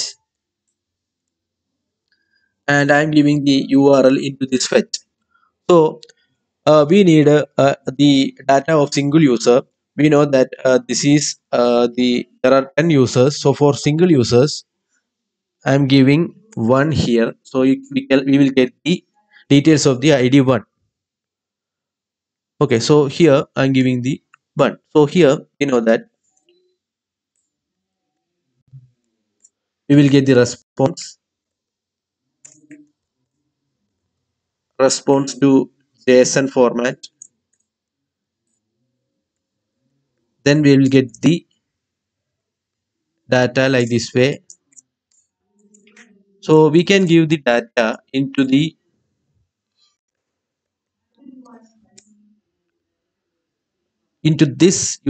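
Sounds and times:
man's voice: 2.7 - 5.0, 5.7 - 6.0, 6.7 - 14.6, 15.7 - 20.6, 22.6 - 26.0, 29.9 - 31.1, 34.8 - 37.1, 40.5 - 41.4, 43.3 - 44.4, 46.4 - 48.7, 54.3 - 55.0.

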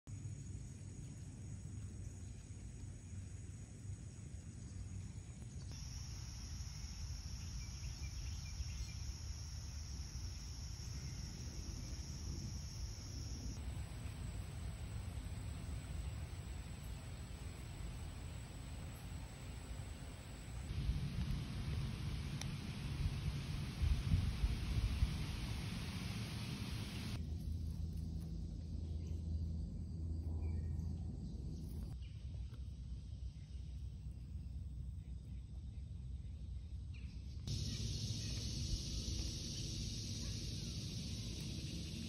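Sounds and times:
faint hiss: 5.4 - 27.2, 37.5 - 42.0
low rumble: 13.4 - 32.0.

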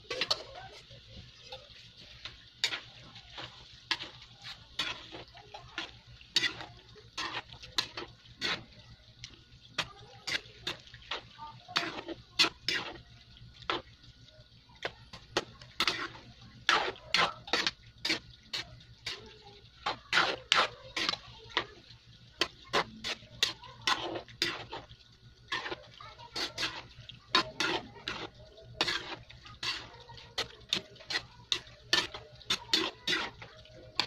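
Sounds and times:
spoon scraping metal pan: 0.0 - 8.8, 9.8 - 13.0, 15.1 - 21.8, 22.4 - 24.9, 25.5 - 34.0.

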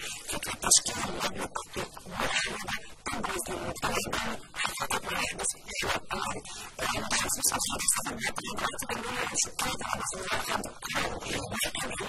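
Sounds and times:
woman speaking: 0.0 - 12.0.

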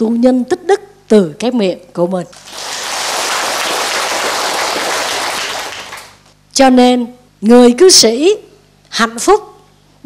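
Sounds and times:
audience applauding: 2.4 - 6.2.

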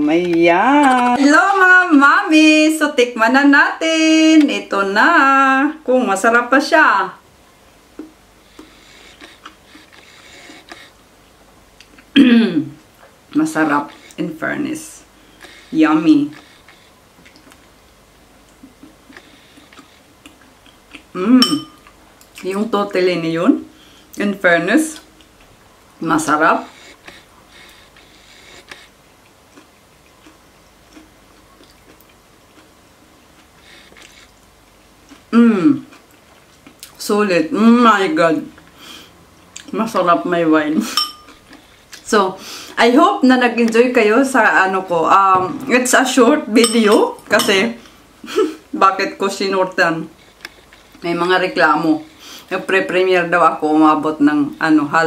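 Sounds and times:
person chewing: 7.9 - 11.0, 11.8 - 12.2, 15.3 - 17.8, 18.4 - 22.4, 26.7 - 37.0, 50.2 - 51.0.

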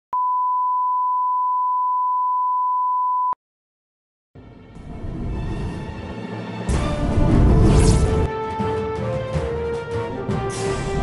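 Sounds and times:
pure test tone beep: 0.2 - 3.4.

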